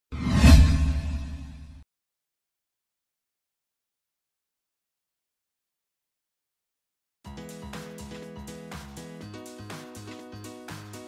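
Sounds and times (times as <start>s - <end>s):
whoosh sound effect: 0.1s - 1.8s.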